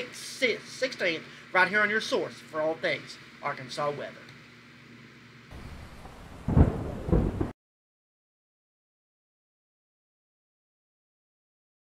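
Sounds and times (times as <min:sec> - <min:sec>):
rain hiss: 0:05.5 - 0:07.5
thunder clap rumbling: 0:05.5 - 0:07.6.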